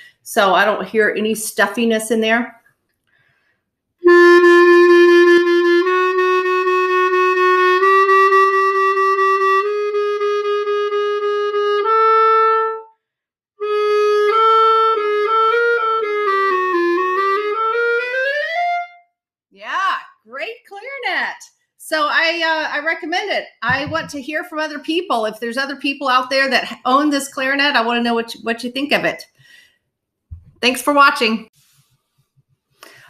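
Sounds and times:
clarinet playing: 4.0 - 13.0, 13.6 - 19.1.

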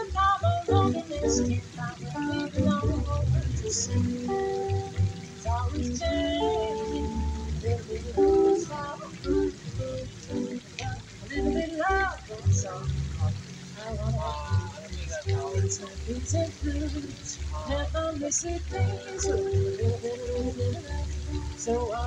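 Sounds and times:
electric guitar: 0.0 - 14.4, 18.7 - 22.0
plucked double bass: 0.0 - 22.0
woman singing into a microphone: 0.0 - 22.0.

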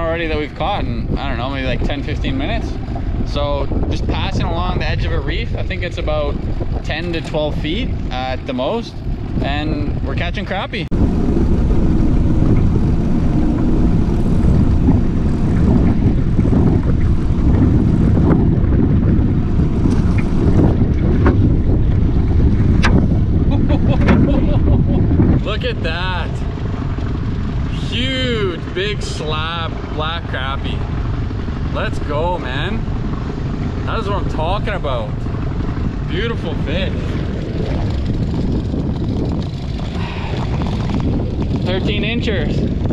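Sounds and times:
wind buffeting microphone: 0.0 - 42.9
voices: 25.4 - 26.5, 27.7 - 30.8.

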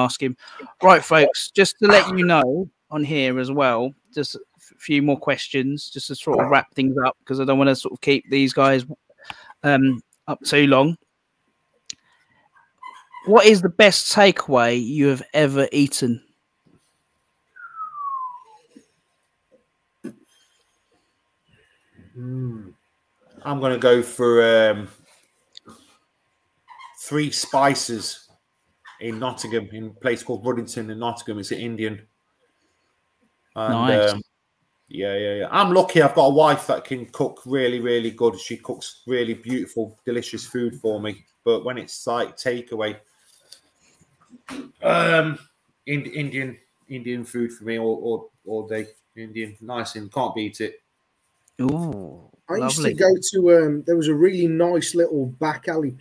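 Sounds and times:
whistled note gliding down: 17.6 - 18.5
man saying um: 22.2 - 22.7, 33.6 - 34.2, 51.6 - 53.2.

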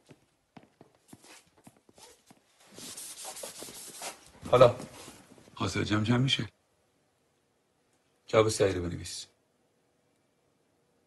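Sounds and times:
light footsteps: 0.0 - 5.6
chalk rubbing on a blackboard: 2.7 - 4.2.

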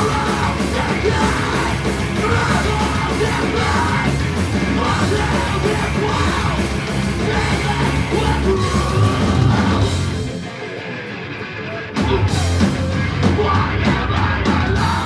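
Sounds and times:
punk band playing live: 0.0 - 15.0.

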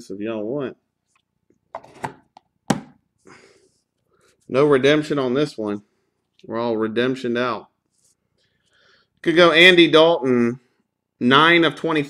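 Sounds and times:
card packaging knocks on table: 1.8 - 3.0.

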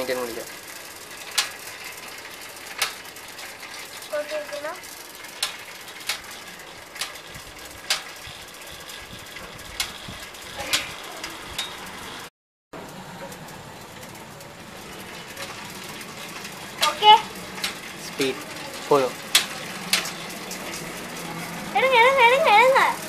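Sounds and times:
bicycle clicks and knocks: 0.0 - 23.0.

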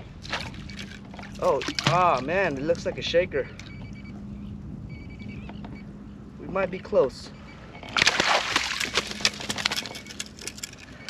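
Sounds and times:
fishing gear clicking: 7.7 - 11.0.

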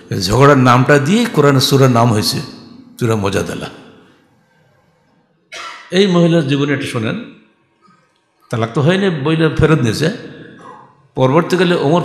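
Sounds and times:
man coughing: 5.5 - 5.9.

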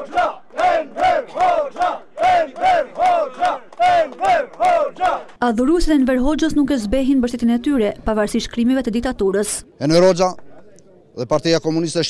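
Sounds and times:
crowd chanting in unison: 0.0 - 5.4
rhythmic clapping: 0.0 - 5.4.

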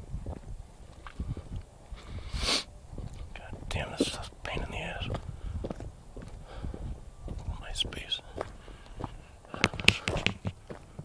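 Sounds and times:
hiss of breath: 2.0 - 2.7
person whispering: 3.3 - 5.2, 7.4 - 8.5.

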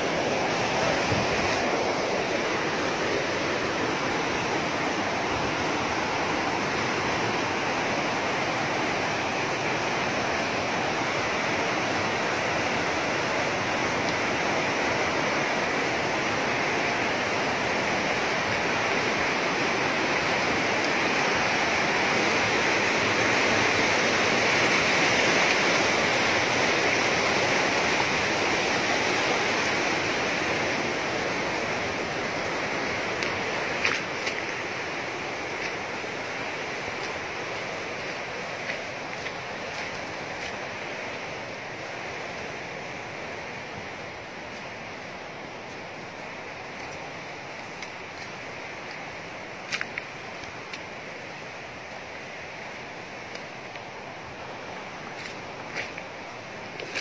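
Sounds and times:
river rushing over rocks: 0.0 - 57.0.

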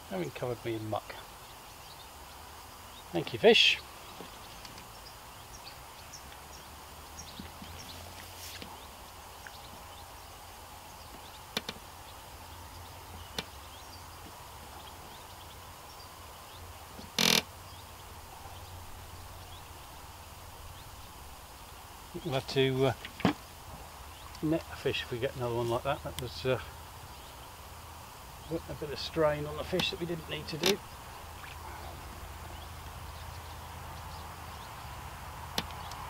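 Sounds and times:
faint steady high hum: 0.0 - 36.0.

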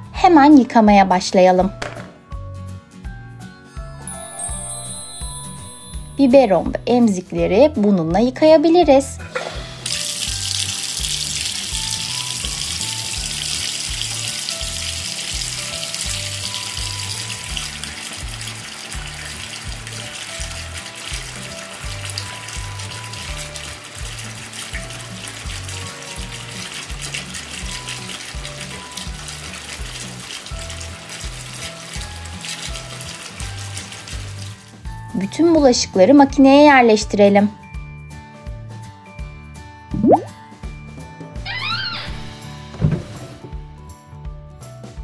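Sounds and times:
background music with a beat: 1.8 - 6.3
water running from a tap: 3.8 - 37.1.

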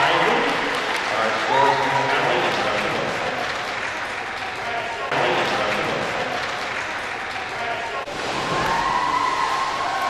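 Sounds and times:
spectators applauding: 0.0 - 10.0.

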